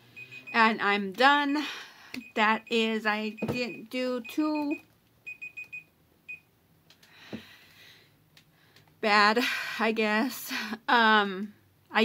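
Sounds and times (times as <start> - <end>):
timer alarm beep: 0.1 - 0.8, 2.2 - 6.5.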